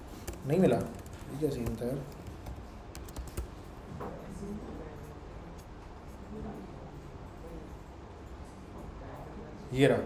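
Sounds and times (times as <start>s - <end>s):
keyboard keys clicking: 0.2s - 3.6s.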